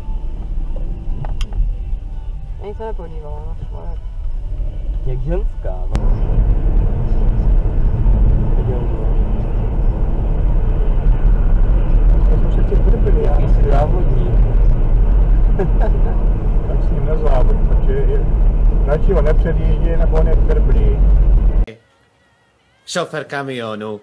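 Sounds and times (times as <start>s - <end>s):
car road and engine rumble: 0.0s - 21.7s.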